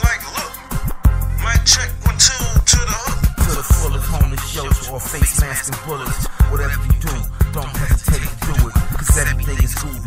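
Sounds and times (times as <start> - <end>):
deep bass line: 0.0 - 10.0
rapping over a beat: 0.0 - 10.0
drum hits: 0.7 - 5.6.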